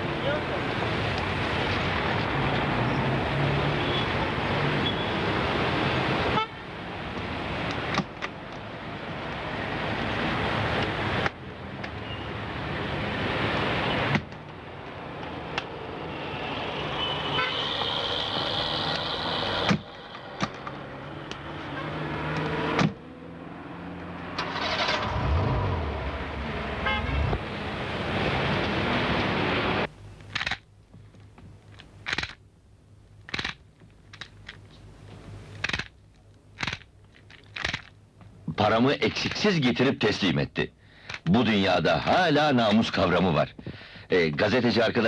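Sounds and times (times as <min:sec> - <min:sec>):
cars running: 0:00.0 - 0:29.9
car horns tooting: 0:06.2 - 0:06.6, 0:16.0 - 0:22.8, 0:24.4 - 0:27.6
sharp clicks: 0:35.5 - 0:38.0.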